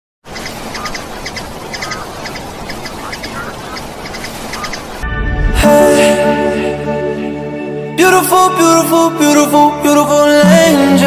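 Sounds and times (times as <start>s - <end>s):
small birds chirping: 0.2s - 5.0s.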